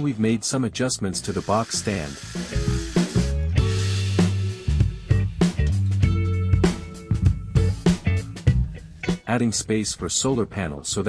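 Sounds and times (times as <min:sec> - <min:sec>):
background music with bass line: 0:01.2 - 0:09.5
angle grinder cutting steel: 0:01.3 - 0:04.9.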